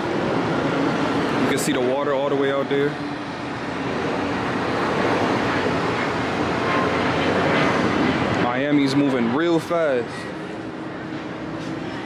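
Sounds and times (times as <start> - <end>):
outdoor rushing noise: 0.0 - 12.0.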